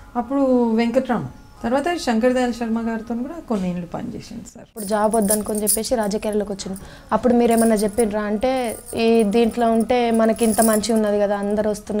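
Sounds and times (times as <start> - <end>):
woman talking: 0.2 - 12.0.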